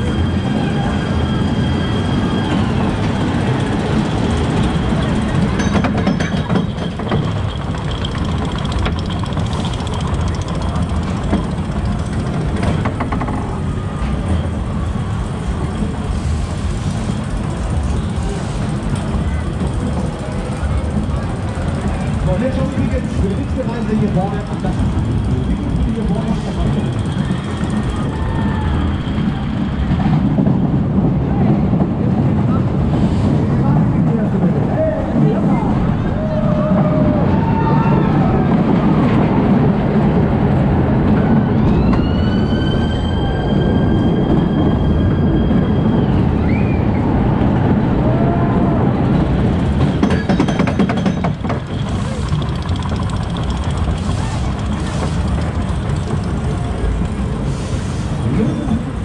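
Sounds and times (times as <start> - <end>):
high-pitched squeal: 0.0 - 5.3, 41.4 - 47.3
crowd voices: 0.0 - 59.0
roller coaster wheels rumbling: 0.0 - 59.0.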